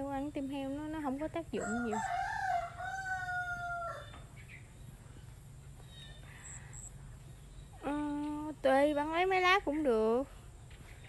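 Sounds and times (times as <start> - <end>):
rooster crowing: 1.6 - 4.3.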